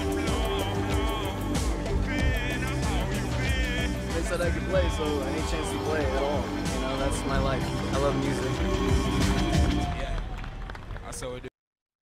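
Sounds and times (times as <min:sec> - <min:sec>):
person's voice: 0:00.0 - 0:10.2.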